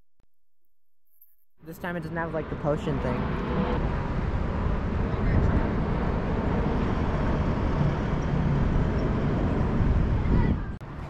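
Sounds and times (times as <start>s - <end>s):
road noise: 1.6s - 11.0s
wind buffeting microphone: 3.1s - 11.0s.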